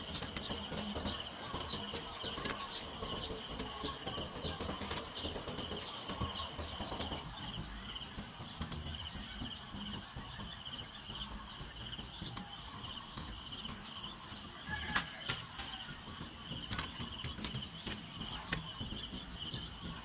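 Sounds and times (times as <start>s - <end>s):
insects chirping: 0.0s - 20.0s.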